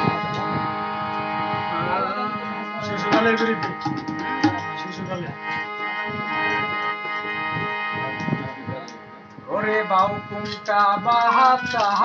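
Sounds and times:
harmonium sustained chord: 0.0 - 12.0
tabla tapping: 2.8 - 5.3, 8.0 - 12.0
wooden clapper clicking: 10.0 - 12.0.

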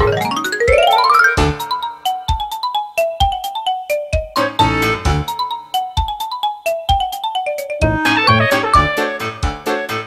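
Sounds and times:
light melody over steady beat: 0.0 - 10.0.

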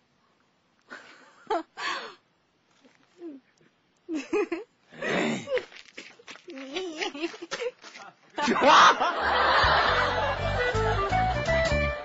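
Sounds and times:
man and woman laughing: 4.1 - 4.7, 7.0 - 11.0
light comic music: 9.6 - 12.0.

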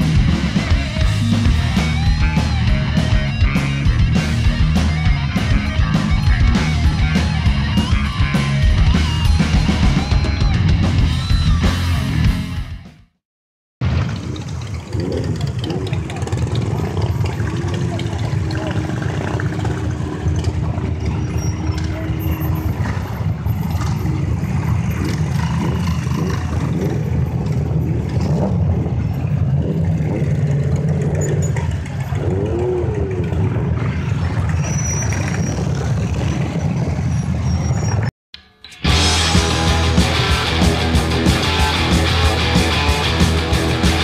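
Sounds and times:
motorcycle engines rumbling: 0.0 - 12.6, 13.8 - 38.1, 38.8 - 44.0
people talking: 14.8 - 24.4, 31.6 - 34.1.

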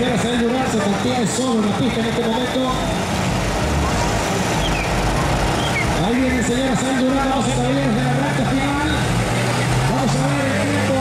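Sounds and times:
steady noisy wash: 0.0 - 11.0
truck engine under load: 0.0 - 11.0.

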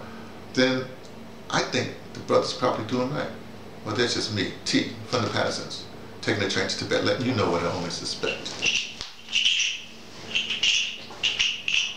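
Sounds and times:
faint steady hum: 0.0 - 11.9
bird chirping: 8.3 - 11.9.

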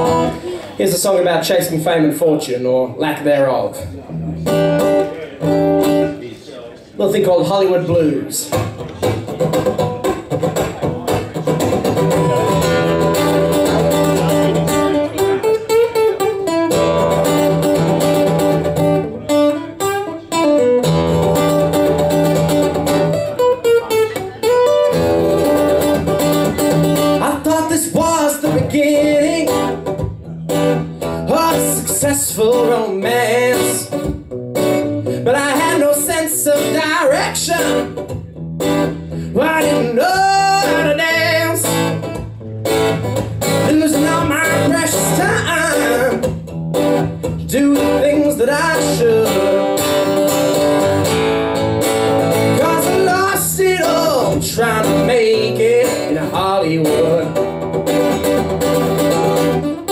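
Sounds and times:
man singing: 0.0 - 2.6, 26.9 - 30.1, 31.0 - 34.2, 35.0 - 38.1, 39.2 - 42.1, 43.5 - 46.4, 47.2 - 50.3, 52.4 - 57.5
acoustic guitar blues: 0.0 - 6.2, 7.0 - 59.9.

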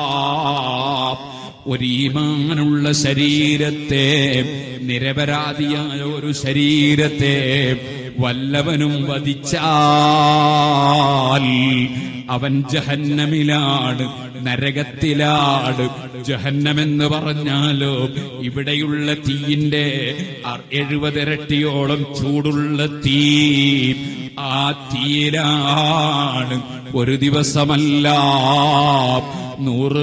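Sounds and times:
man chanting melodic recitation: 0.0 - 30.0.

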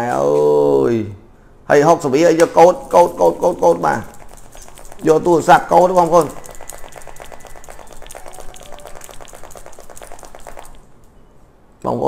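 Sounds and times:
man talking: 0.8 - 4.2, 5.0 - 6.5
smartphones clicking and rattling: 2.4 - 11.2.

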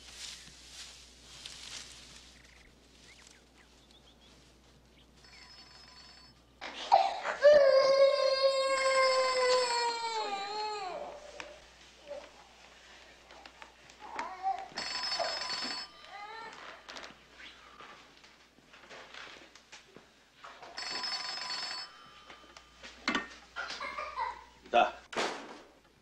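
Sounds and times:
old telephone bell ringing: 5.1 - 7.1, 8.6 - 10.3, 14.7 - 17.3, 20.6 - 24.5.

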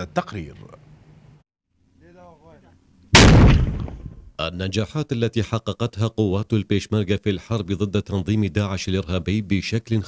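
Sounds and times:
mortar firing blast: 3.2 - 4.3.

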